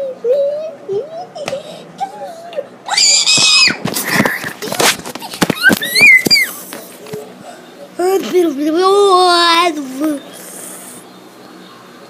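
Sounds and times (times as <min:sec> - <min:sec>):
child squealing: 0:01.0 - 0:03.8, 0:05.5 - 0:06.6.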